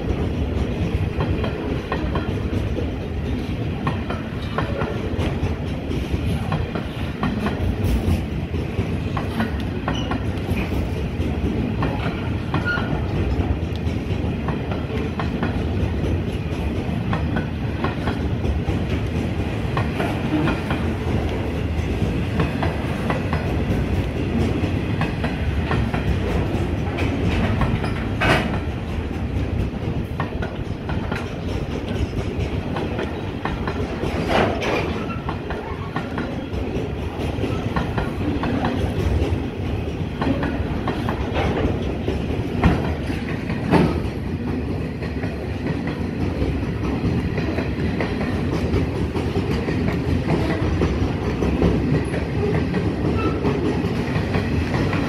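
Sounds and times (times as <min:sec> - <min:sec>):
clickety-clack over rail joints: 0:00.0 - 0:55.0
train wagons rumbling on rails: 0:00.0 - 0:55.0.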